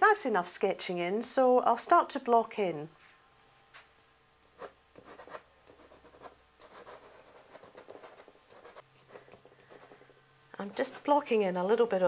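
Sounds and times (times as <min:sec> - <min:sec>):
pastel stick scratching on paper: 0:04.6 - 0:11.2.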